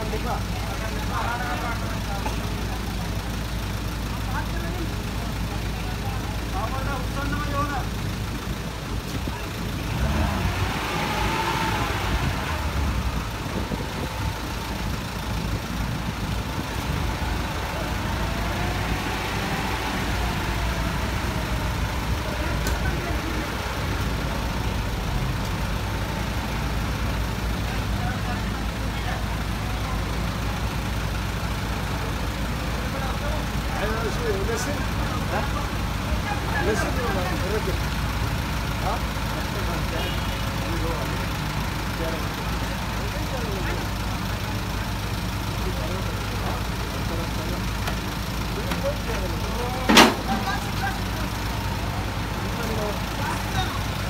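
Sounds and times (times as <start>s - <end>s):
men talking: 0.0s - 30.9s, 31.8s - 54.0s
truck engine running: 0.0s - 54.0s.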